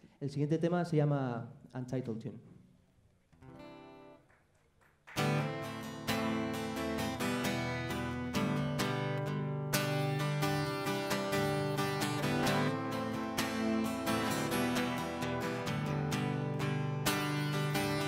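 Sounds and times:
strummed acoustic guitar: 5.2s - 18.0s.

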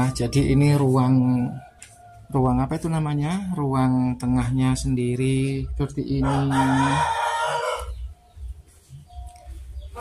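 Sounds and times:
rooster crowing: 6.2s - 8.3s.

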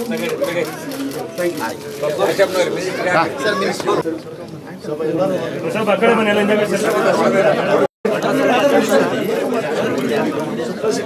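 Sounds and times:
crowd babble of voices: 0.0s - 11.0s.

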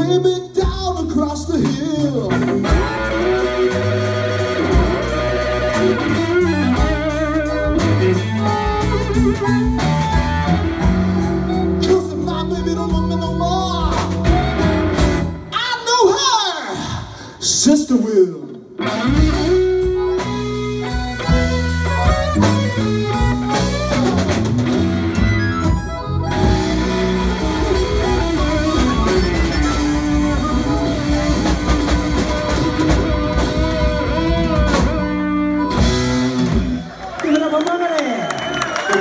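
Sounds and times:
bass guitar: 0.0s - 16.4s, 18.6s - 37.1s
drums: 0.0s - 39.0s
electric guitar: 1.4s - 15.6s, 18.6s - 37.2s
harmonica: 2.6s - 15.3s, 19.0s - 36.8s
crowd voices and cheers: 36.4s - 39.0s.

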